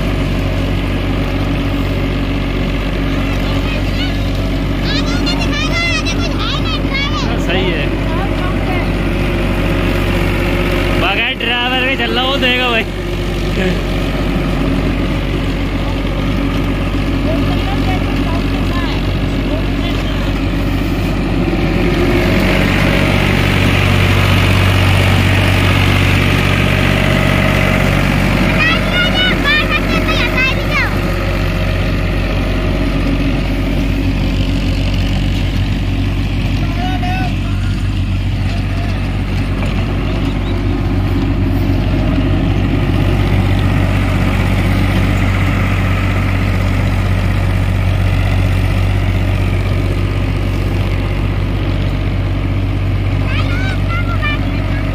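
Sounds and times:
rotavator churning soil: 0.0 - 54.9
tractor diesel engine under load: 0.0 - 54.9.

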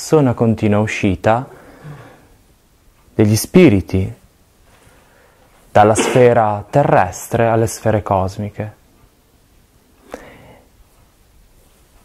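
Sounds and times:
breathy intake of breath: 1.5 - 2.4, 10.0 - 10.7.

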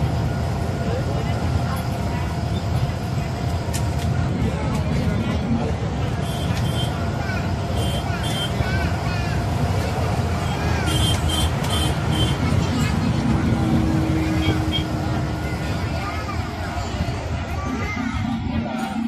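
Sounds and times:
diesel bus engine drone: 0.0 - 19.0
road noise: 0.0 - 19.0.

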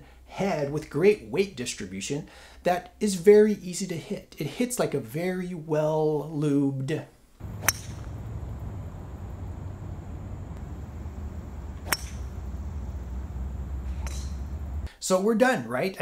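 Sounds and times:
golf driver striking ball: 7.4 - 14.9
wind rumble on microphone: 7.4 - 14.9.

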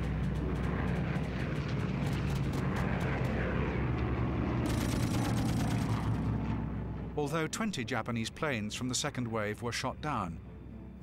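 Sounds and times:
propeller aircraft droning overhead: 0.0 - 11.0.

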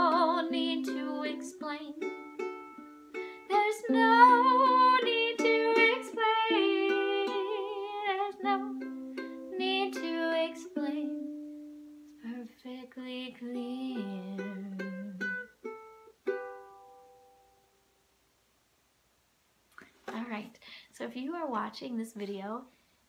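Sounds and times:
ukulele strummed and picked: 0.0 - 12.2, 13.1 - 17.6.

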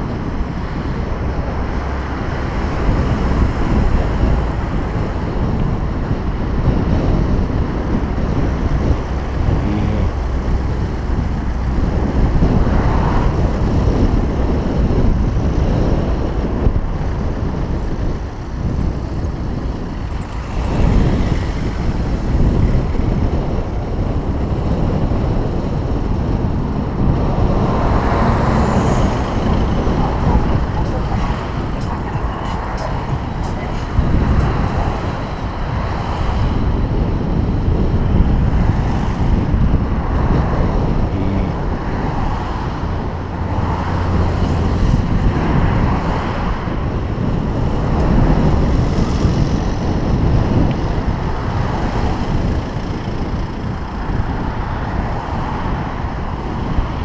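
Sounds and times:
road traffic: 0.0 - 57.0
wind on microphone: 0.0 - 57.0.

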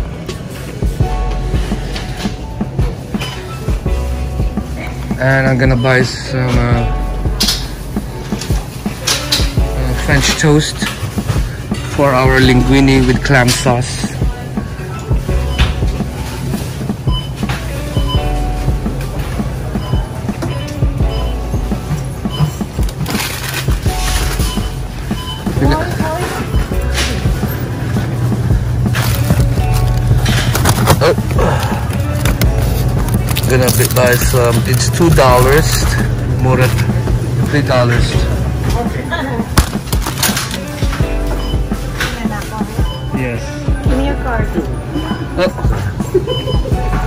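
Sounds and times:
shoppers' voices: 0.0 - 47.0
store background music: 0.0 - 47.0
voices: 24.6 - 47.0.

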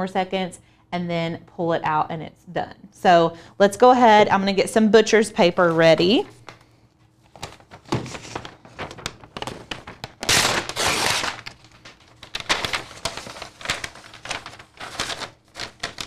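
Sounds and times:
paper rustling and crinkling: 5.6 - 16.0.

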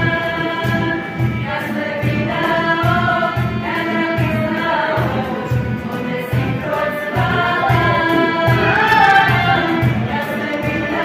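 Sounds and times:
female vocal group singing: 0.0 - 11.0.

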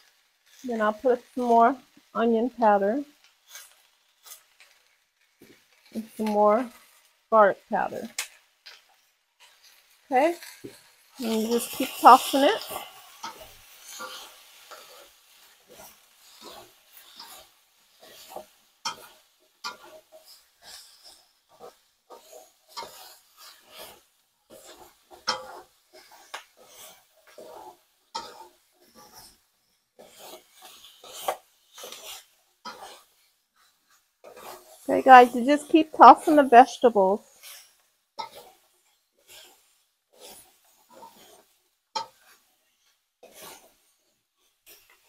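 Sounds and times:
spatulas scraping and knocking wok: 0.0 - 45.0.

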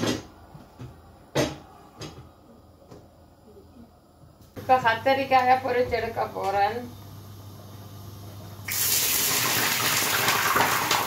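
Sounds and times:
liquid sizzling in hot pan: 8.7 - 11.0.

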